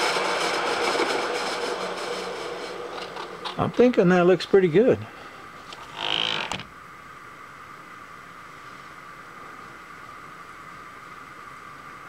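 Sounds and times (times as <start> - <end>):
milling machine humming: 0.0 - 6.6
brief creak: 5.7 - 6.7.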